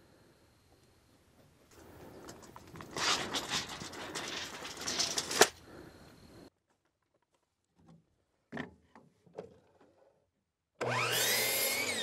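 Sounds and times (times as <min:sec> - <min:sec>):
tape measure retracting and snapping: 0:04.4 - 0:05.6.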